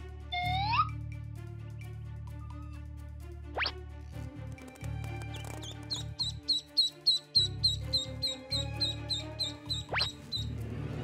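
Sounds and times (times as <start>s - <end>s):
background music: 0.0s - 11.0s
duckling peeping: 5.3s - 10.5s.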